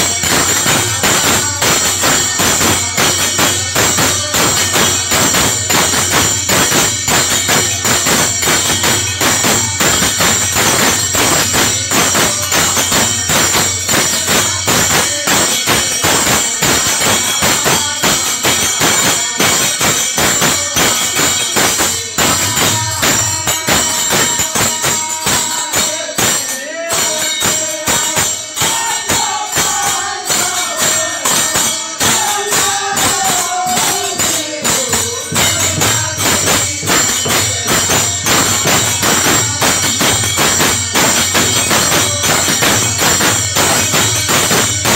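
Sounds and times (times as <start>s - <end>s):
dholak drum: 0.0s - 44.9s
small metal hand cymbals: 0.0s - 44.9s.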